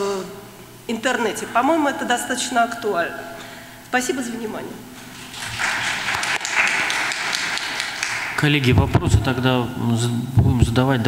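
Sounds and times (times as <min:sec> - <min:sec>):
audience applauding: 0:05.0 - 0:09.2.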